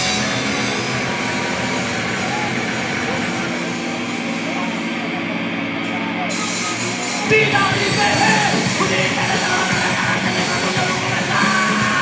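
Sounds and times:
bass guitar: 0.0 - 12.0
distorted electric guitar: 0.0 - 12.0
drum kit: 0.0 - 12.0.

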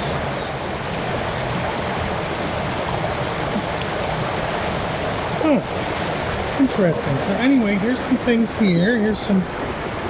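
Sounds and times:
water pouring and churning: 0.0 - 10.0.

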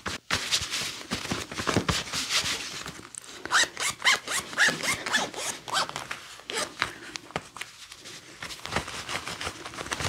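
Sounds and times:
zipper zipping: 3.5 - 6.7.

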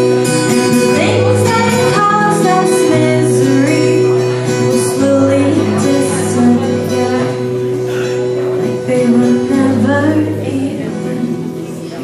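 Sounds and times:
acoustic guitar chords: 0.0 - 12.0
woman singing into a microphone: 0.5 - 12.0.

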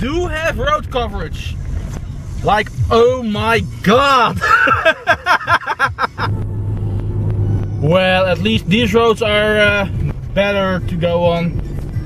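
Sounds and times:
car engine and tyres droning: 0.0 - 12.0
man laughing heartily: 4.4 - 6.3.

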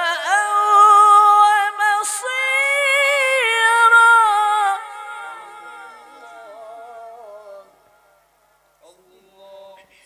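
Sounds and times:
person chanting recitation: 0.0 - 10.0.

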